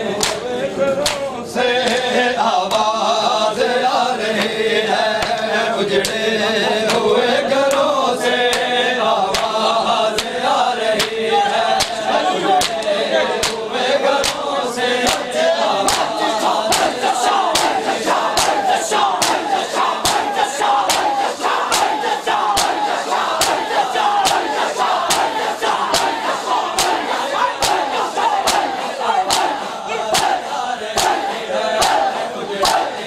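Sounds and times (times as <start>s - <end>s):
crowd chanting: 0.0s - 33.0s
hands slapping chests in unison: 0.1s - 33.0s.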